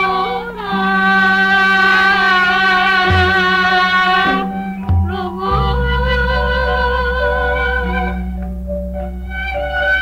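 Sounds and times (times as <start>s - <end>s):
steady low tone: 0.0s - 10.0s
gamelan long held note: 3.2s - 10.0s.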